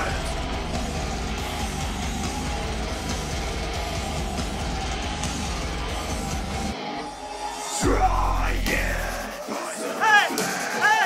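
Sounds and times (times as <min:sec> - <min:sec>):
distorted electric guitar: 0:00.0 - 0:09.4
metal band playing: 0:00.0 - 0:11.0.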